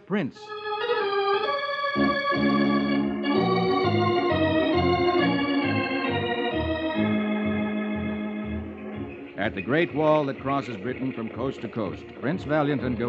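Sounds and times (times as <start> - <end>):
organ music: 0.0 - 13.0.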